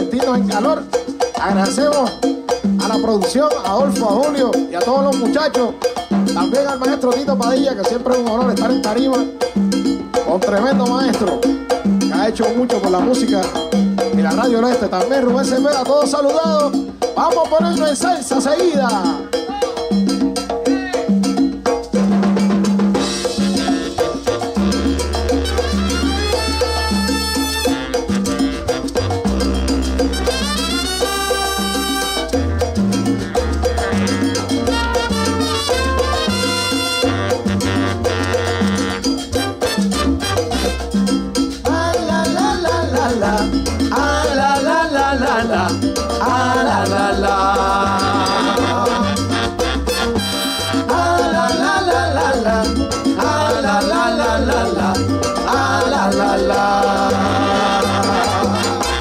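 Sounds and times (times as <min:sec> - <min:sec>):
bass line: 0:00.0 - 0:59.0
latin percussion: 0:00.0 - 0:59.0
salsa band playing: 0:00.0 - 0:59.0.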